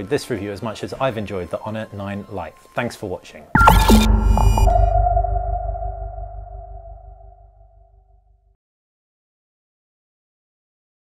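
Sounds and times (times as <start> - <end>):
held synth tone: 3.6 - 7.9
deep low hum: 3.6 - 8.0.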